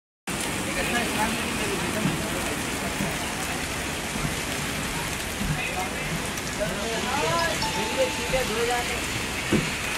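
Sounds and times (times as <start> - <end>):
heavy rain on tarmac: 0.3 - 9.9.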